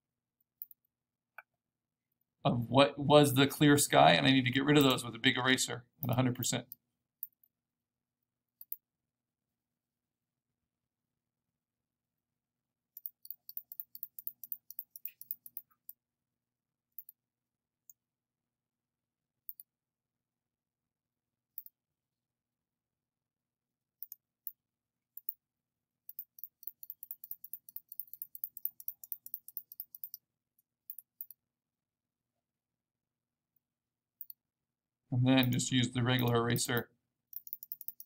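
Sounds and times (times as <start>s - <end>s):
computer mouse clicking: 0.6s - 0.9s, 8.6s - 8.8s, 13.0s - 16.0s, 16.9s - 17.2s, 19.4s - 19.7s, 21.5s - 21.8s, 24.0s - 25.4s, 26.1s - 30.2s, 30.8s - 31.4s, 34.2s - 34.4s, 36.2s - 38.0s.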